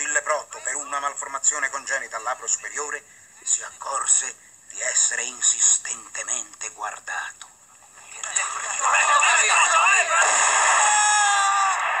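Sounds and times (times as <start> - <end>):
men shouting: 8.8 - 12.0.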